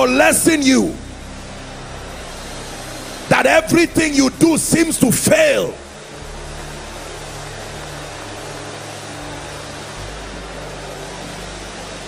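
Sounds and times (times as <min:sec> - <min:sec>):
congregation praying aloud: 0:00.0 - 0:01.1, 0:03.3 - 0:05.8.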